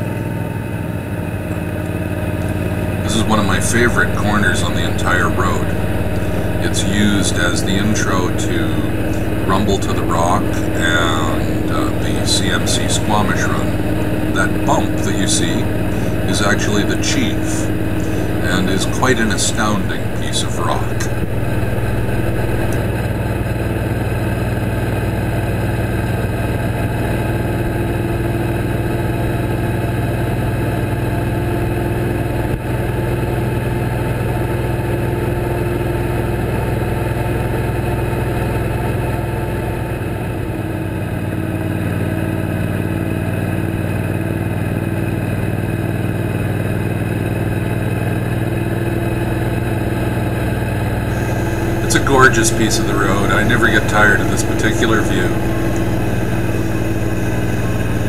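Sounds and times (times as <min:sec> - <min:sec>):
motorcycle engine cruising: 0:00.0 - 0:58.0.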